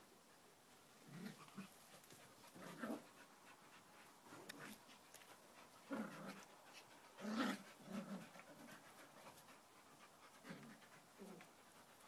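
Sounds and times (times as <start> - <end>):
dogs panting: 1.8 - 12.0.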